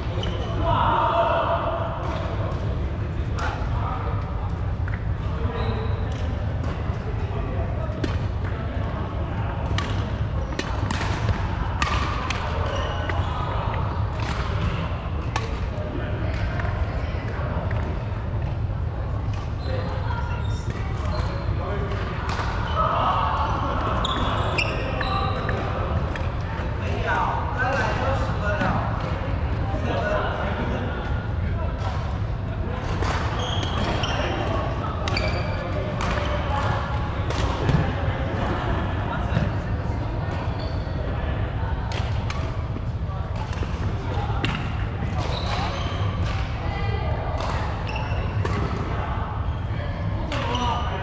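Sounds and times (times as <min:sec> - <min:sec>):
voices: 0:00.0 - 0:51.0
racket striking shuttlecock: 0:10.6 - 0:12.5.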